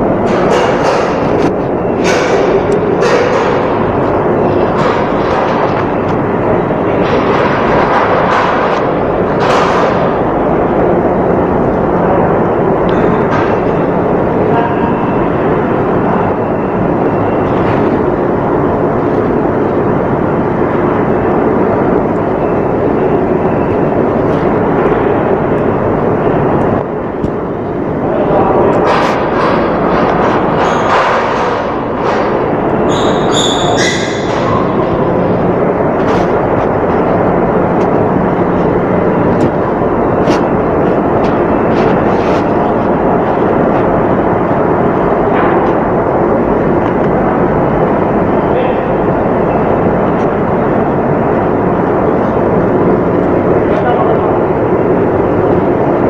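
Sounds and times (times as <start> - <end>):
constant low hum: 0.0 - 56.0
machinery roaring: 0.0 - 56.0.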